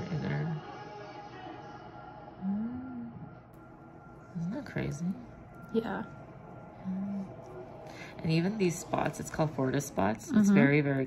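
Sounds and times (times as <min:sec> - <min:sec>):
person humming: 0:02.4 - 0:03.3.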